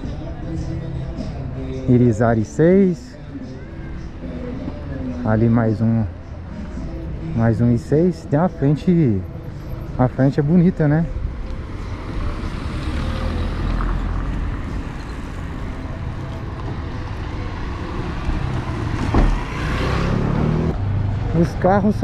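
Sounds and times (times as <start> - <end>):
road traffic engine rumble: 0.0 - 22.0.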